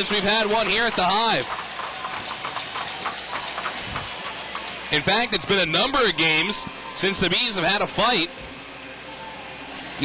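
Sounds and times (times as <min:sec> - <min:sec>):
crowd hubbub: 0:00.0 - 0:08.2.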